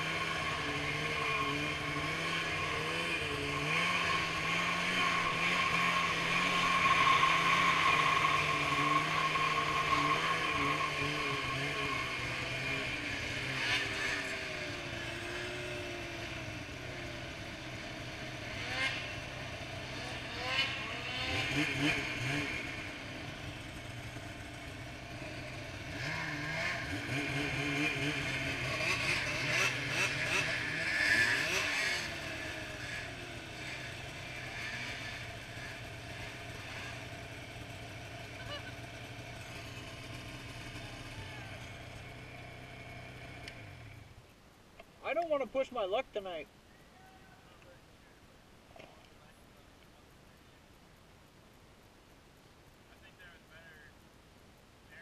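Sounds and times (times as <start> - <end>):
snowmobile engine revving: 0.0 - 44.1.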